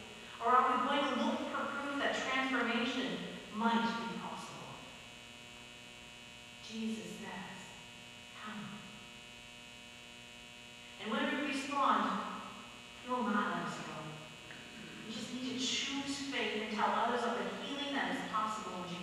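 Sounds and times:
electrical mains hum: 0.0s - 19.0s
indistinct voice: 13.1s - 16.0s.

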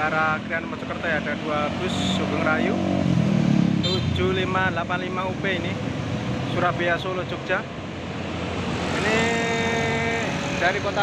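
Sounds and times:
bus engine and road noise: 0.0s - 11.0s.

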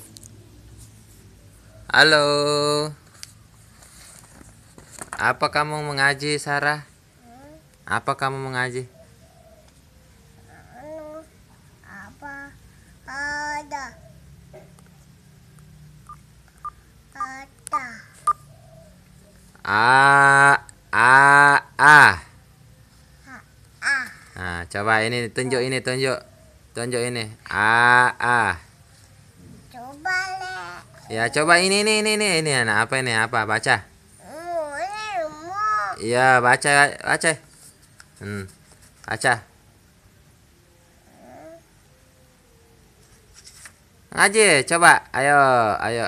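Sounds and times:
toddler holding a wavering vowel: 10.5s - 14.0s, 34.2s - 36.0s, 41.0s - 41.8s
adult voice repeating syllables: 19.6s - 22.3s, 24.4s - 26.2s, 29.8s - 37.4s.

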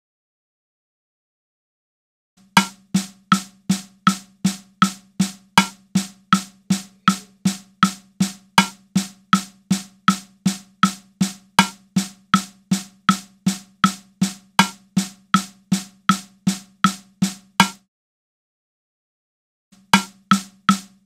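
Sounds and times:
drum hits: 2.5s - 17.8s, 20.0s - 21.0s.

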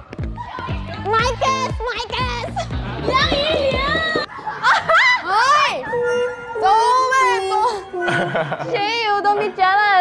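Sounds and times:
pop music with bass beat: 0.1s - 4.3s
women laughing and squealing: 2.4s - 5.9s, 7.4s - 9.6s.

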